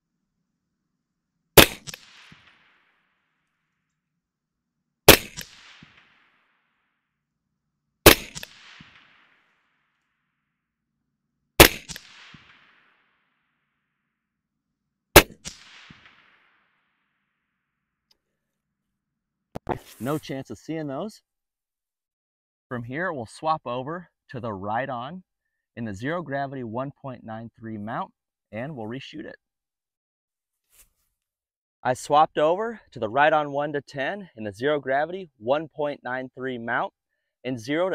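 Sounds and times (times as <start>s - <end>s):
suppressed rifle shots: 1.6s - 2.9s, 5.0s - 6.4s, 8.0s - 9.5s, 11.6s - 13.0s, 15.2s - 16.6s
gunshot echo: 1.6s - 3.0s, 5.1s - 6.5s, 8.0s - 9.5s, 11.6s - 13.0s, 15.2s - 16.7s.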